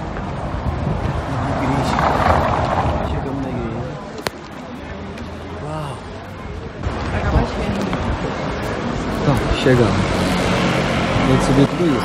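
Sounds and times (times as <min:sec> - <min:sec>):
wind rumbling on microphone: 0:00.0 - 0:04.6, 0:06.4 - 0:11.6
people talking: 0:01.0 - 0:10.2, 0:11.2 - 0:12.0.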